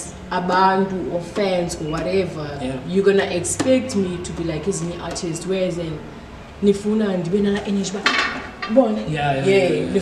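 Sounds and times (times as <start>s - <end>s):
woman talking: 0.0s - 10.0s.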